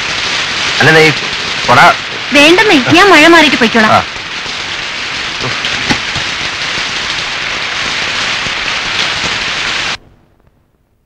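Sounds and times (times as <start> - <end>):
heavy rain pouring: 0.0 - 10.4.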